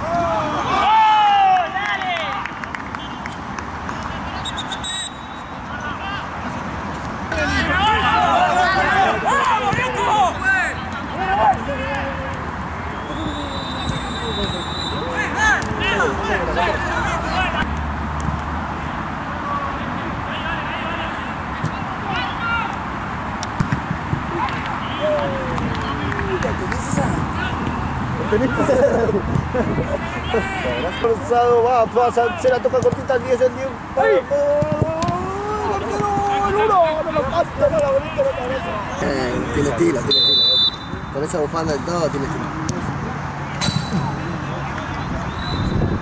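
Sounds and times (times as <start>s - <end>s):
players shouting in celebration: 0.0s - 2.6s, 7.3s - 12.3s, 12.9s - 17.7s, 24.3s - 29.0s, 29.8s - 32.8s, 34.0s - 40.1s
distant voices: 0.0s - 17.8s
steady rush of background noise: 0.0s - 46.0s
shrill whistle: 4.4s - 5.5s, 12.9s - 15.1s, 40.1s - 41.0s, 45.3s - 45.8s
sharp knocks from ball play: 23.4s - 24.7s.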